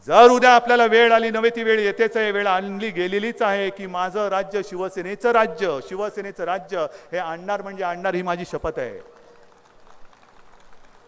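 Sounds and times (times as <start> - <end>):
speech echo over loudspeakers: 0.0 - 9.5
faint background noise: 0.0 - 11.0.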